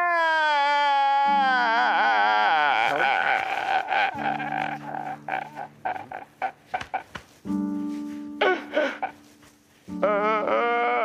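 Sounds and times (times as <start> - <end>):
man wailing and sobbing: 0.0 - 7.2, 8.4 - 9.3, 10.0 - 11.0
background music with held notes: 1.2 - 11.0.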